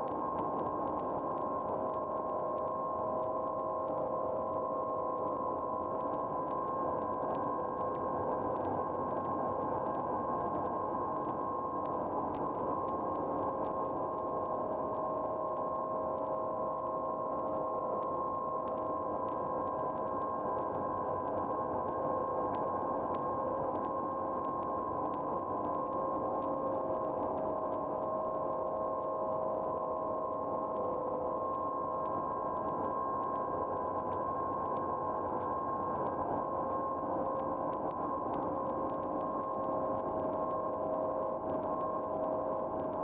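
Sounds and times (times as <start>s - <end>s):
faint crackles: 0.0s - 43.0s.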